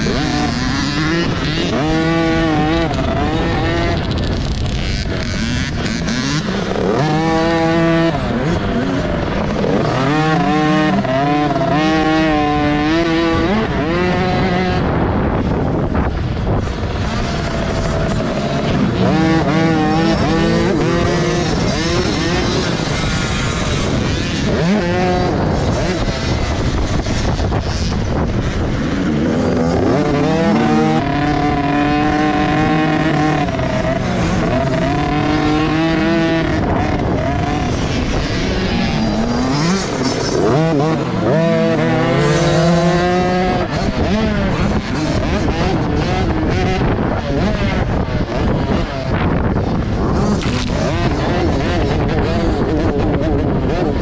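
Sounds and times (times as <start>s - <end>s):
motocross bike engine revving: 0.0s - 54.0s.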